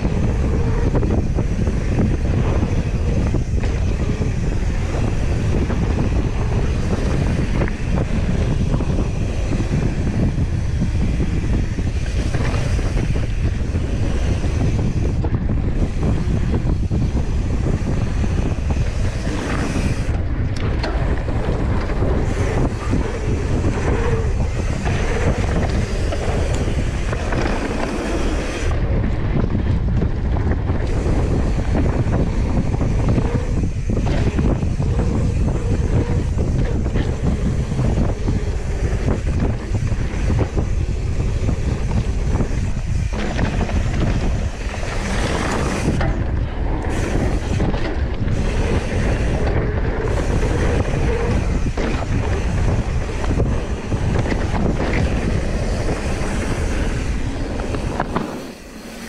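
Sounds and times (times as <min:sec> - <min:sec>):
bike tyres rumbling on dirt: 0:00.0 - 0:59.0
wind rushing over microphone: 0:00.0 - 0:59.0.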